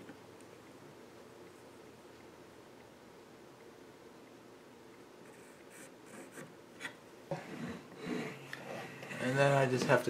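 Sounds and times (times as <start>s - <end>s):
pencil scratching on wood: 5.3s - 9.5s.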